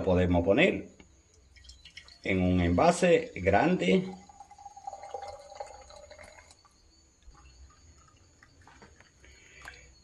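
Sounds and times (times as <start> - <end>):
liquid pouring into glass jar: 1.3 - 10.0.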